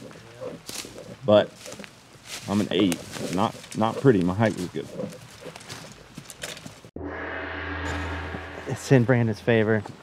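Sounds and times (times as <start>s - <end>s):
steady ringing tone: 7.0s - 9.3s.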